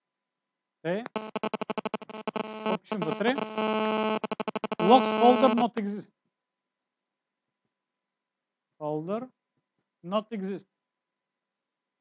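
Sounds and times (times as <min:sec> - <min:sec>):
pulsing electrical hum: 0:01.0 - 0:05.6
garbled robotic voice: 0:02.1 - 0:05.8.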